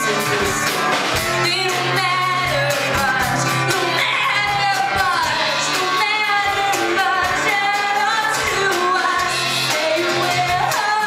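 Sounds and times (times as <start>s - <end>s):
acoustic guitar: 0.0s - 11.0s
drum kit: 0.0s - 11.0s
woman singing: 0.0s - 11.0s.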